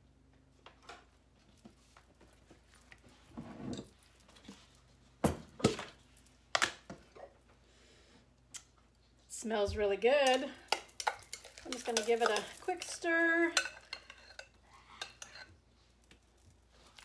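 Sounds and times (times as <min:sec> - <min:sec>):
tortillas rustling on countertop: 0:10.6 - 0:17.0.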